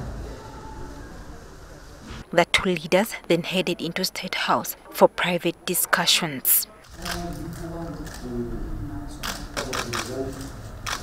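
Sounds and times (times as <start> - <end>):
faint voices: 0.0 - 10.9
camera shutters clicking: 6.8 - 8.3, 9.2 - 11.0.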